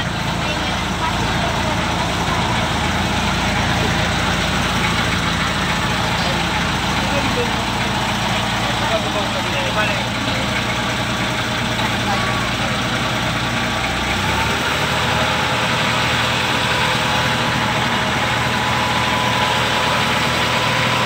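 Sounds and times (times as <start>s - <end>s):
boat engine running: 0.0s - 21.0s.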